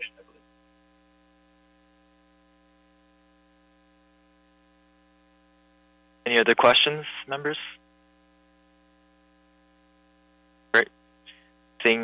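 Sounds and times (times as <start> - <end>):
faint mains hum: 0.0 - 12.0
person speaking: 6.3 - 7.8.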